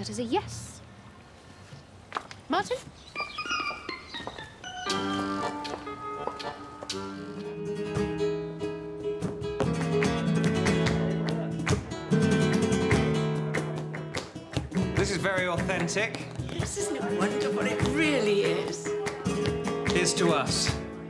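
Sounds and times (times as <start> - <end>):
flamenco guitar strumming: 4.8 - 21.0
hand-clapping: 9.2 - 21.0.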